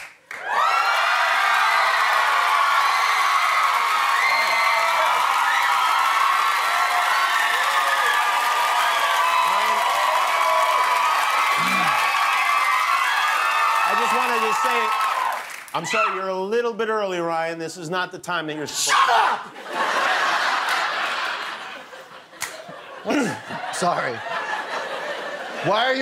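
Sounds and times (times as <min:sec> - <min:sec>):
applause: 0:00.0 - 0:15.8
audience cheering and screaming: 0:00.3 - 0:16.2.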